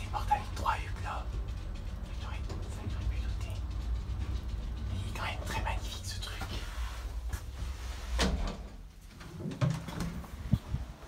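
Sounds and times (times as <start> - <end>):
elevator humming in shaft: 0.0 - 11.0
soft whisper-like voice: 2.0 - 3.8, 4.8 - 7.7.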